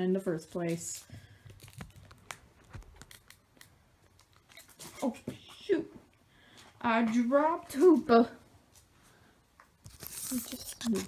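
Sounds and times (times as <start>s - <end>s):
foil pack crinkling: 0.5s - 5.0s, 9.8s - 11.0s.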